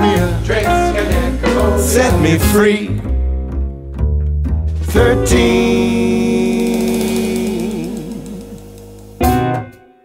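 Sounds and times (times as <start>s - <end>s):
jazz band held chord: 0.0s - 9.9s
man singing held note: 5.0s - 8.6s.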